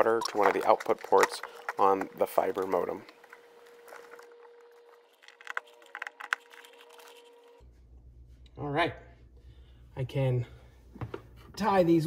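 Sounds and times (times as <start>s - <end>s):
cable handling clicks and rustles: 0.0s - 7.4s.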